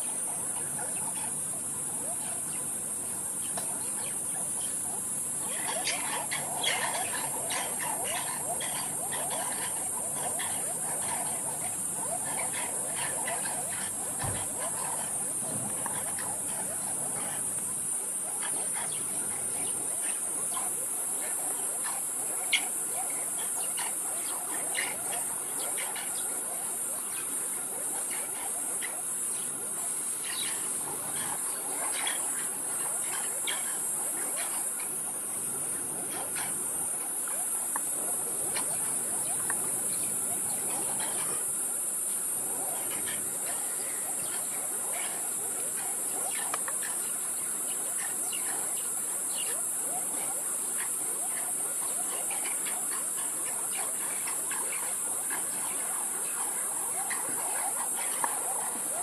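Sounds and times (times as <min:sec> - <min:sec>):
crickets chirping: 0:00.0 - 0:59.0
mongooses chirping and clicking: 0:03.2 - 0:41.5, 0:42.4 - 0:59.0.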